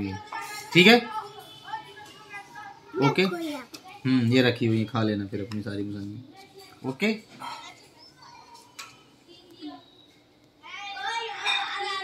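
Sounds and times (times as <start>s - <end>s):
small child's voice: 0.1s - 4.1s, 7.4s - 10.0s, 10.6s - 12.0s.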